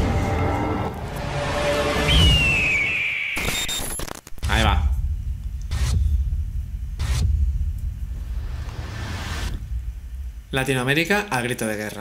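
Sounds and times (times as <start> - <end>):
deep bass rumble: 4.4 - 11.0.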